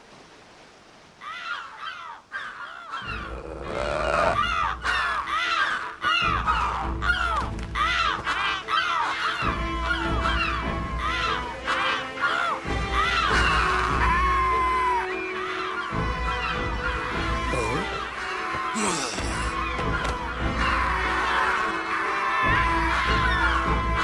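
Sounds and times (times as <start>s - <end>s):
cartoon gulls crying: 2.9s - 24.0s
background music: 3.0s - 24.0s.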